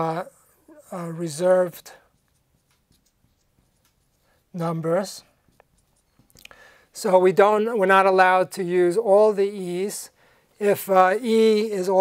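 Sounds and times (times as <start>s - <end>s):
marker ticking on glass: 1.6s - 6.6s.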